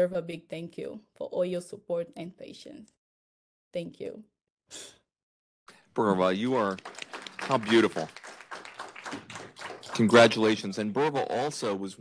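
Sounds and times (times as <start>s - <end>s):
people clapping lightly: 6.1s - 11.4s.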